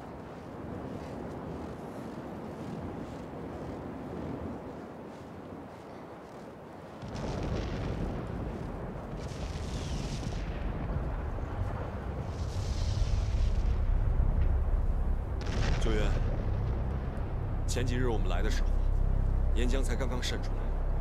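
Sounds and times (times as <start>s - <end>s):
wind gusts hissing: 0.0s - 21.0s
volcano rumbling: 7.0s - 21.0s.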